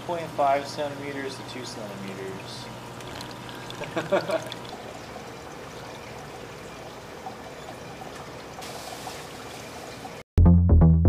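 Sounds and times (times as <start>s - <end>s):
water trickling into tanks: 0.0s - 10.2s
bright water hiss: 8.6s - 10.0s.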